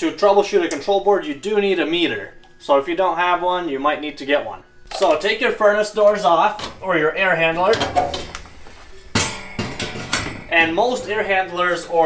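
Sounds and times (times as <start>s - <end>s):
sheet-metal panel clanking: 9.1s - 11.2s.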